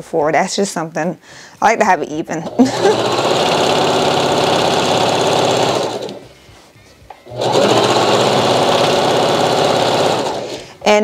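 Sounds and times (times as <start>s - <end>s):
sewing machine running: 2.4s - 6.2s, 7.3s - 10.8s.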